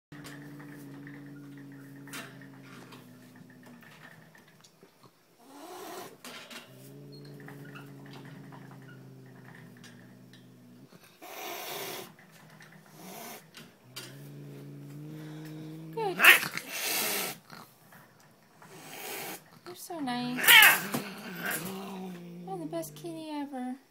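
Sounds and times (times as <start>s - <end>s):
cat growling: 0.1s - 17.8s, 18.6s - 23.6s
cat hissing: 0.2s - 4.6s, 5.4s - 12.2s, 12.8s - 17.7s, 18.6s - 19.5s, 20.4s - 23.2s.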